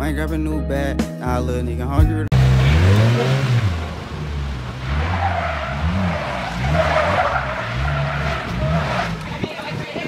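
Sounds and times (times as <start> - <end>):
engine revving: 2.3 - 10.0
tyre squealing on asphalt: 2.4 - 10.0.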